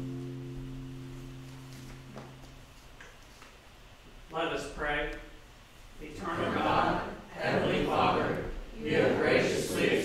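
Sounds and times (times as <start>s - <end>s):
held organ chord of hymn accompaniment: 0.0s - 2.6s.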